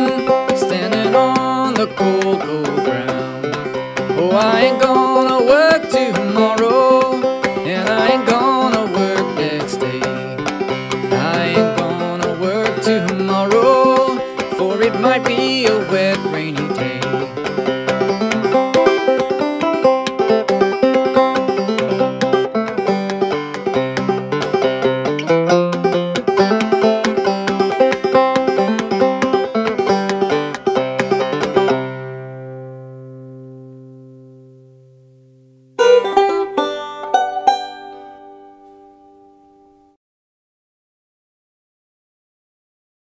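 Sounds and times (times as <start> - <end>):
banjo plucking and strumming: 0.0 - 40.0.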